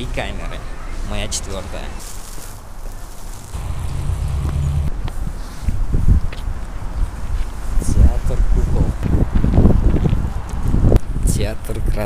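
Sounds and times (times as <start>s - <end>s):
low street rumble: 1.2s - 5.4s.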